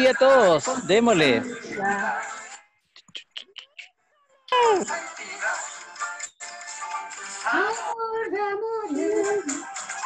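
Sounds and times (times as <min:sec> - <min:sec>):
voices and music: 0:00.0 - 0:02.8, 0:04.5 - 0:10.0
woman singing held line: 0:07.6 - 0:09.6.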